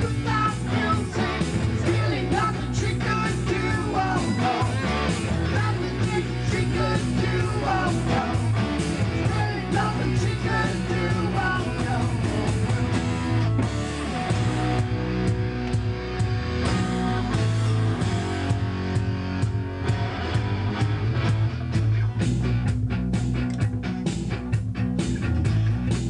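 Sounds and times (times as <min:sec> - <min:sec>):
bass guitar low notes: 0:00.0 - 0:26.0
live rock band playing: 0:00.0 - 0:26.0.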